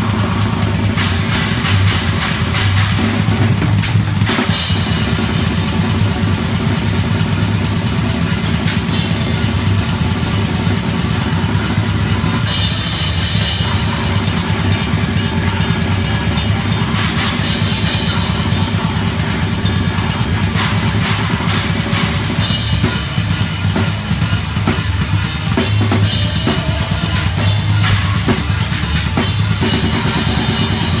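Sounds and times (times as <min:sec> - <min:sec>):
band playing: 0:00.0 - 0:31.0
fast blast-beat drumming: 0:00.0 - 0:31.0.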